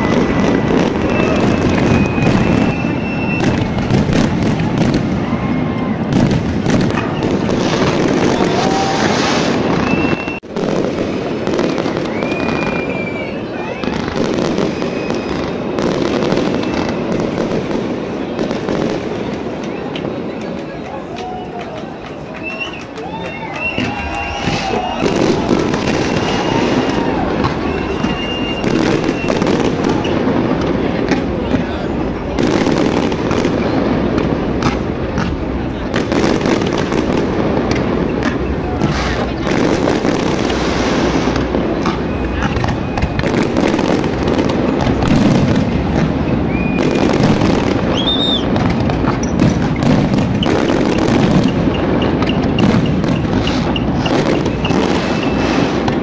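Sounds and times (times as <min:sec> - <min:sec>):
fireworks whistles: 0:00.0 - 0:20.6, 0:21.2 - 0:56.0
fireworks crackling and banging: 0:00.0 - 0:56.0.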